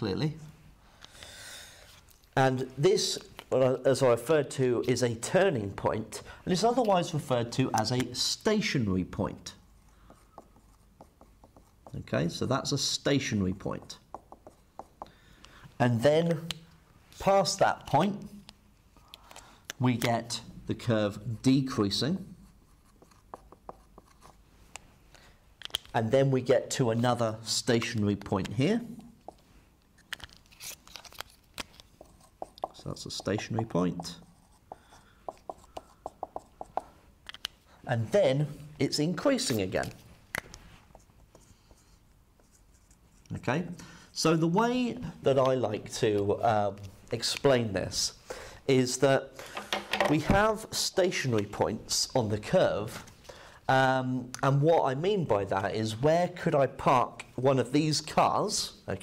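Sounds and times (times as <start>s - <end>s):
man talking: 0.0s - 0.5s, 2.4s - 9.6s, 11.9s - 14.0s, 15.8s - 16.5s, 17.2s - 18.4s, 19.8s - 22.4s, 25.9s - 29.1s, 32.6s - 34.3s, 37.8s - 40.0s, 43.3s - 49.4s, 50.0s - 53.0s, 53.7s - 59.0s
marker squeaking on whiteboard: 9.6s - 12.1s, 22.3s - 24.4s, 31.9s - 37.0s.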